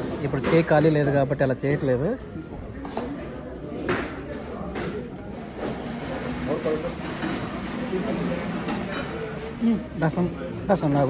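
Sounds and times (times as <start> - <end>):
murmur of voices: 0.0 - 11.0.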